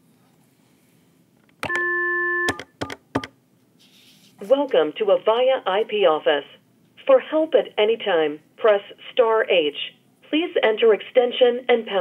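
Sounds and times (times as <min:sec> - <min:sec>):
phone dial tone: 0:01.6 - 0:03.3.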